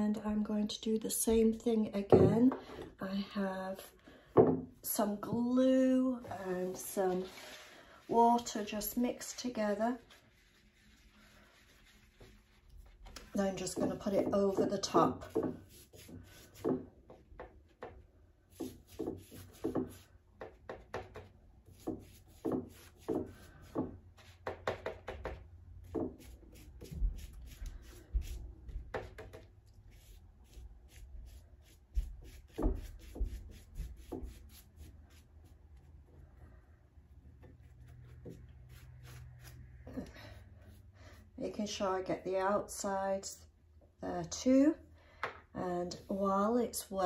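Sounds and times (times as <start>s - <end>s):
paintbrush dabbing on paper: 6.3s - 16.9s, 17.8s - 36.1s, 37.3s - 41.3s, 45.9s - 46.4s.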